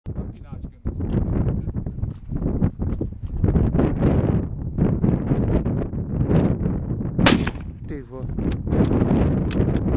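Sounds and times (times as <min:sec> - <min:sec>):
wind noise on microphone: 0:00.1 - 0:09.9
rifle shot: 0:07.2 - 0:07.8.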